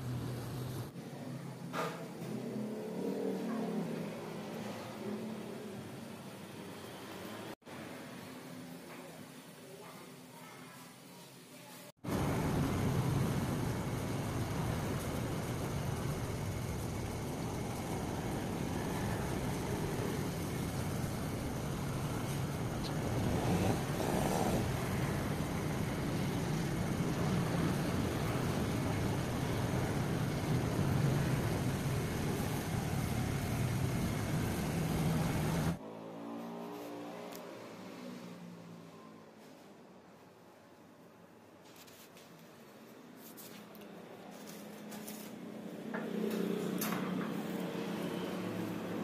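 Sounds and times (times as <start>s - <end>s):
street traffic rumble: 0.0s - 1.0s, 12.0s - 38.9s, 43.8s - 49.0s.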